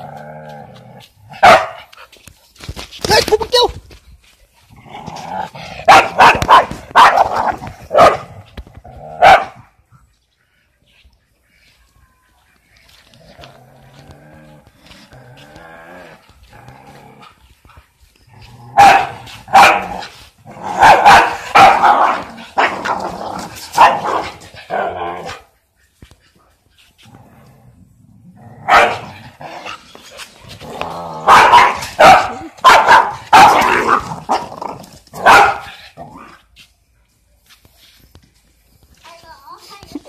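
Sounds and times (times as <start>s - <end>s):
dog barking: 1.4s - 1.9s, 5.8s - 8.3s, 9.2s - 9.6s, 18.8s - 20.1s, 20.8s - 22.8s, 23.8s - 24.4s, 28.7s - 29.1s, 31.2s - 34.4s, 35.2s - 35.8s
dog growling: 4.7s - 5.9s, 13.1s - 17.5s, 27.0s - 31.6s.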